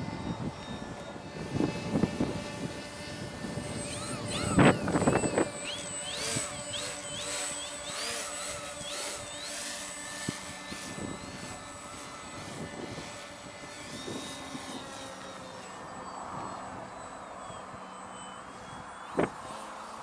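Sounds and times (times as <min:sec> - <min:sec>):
electric motor and propeller whining: 0:00.0 - 0:20.0.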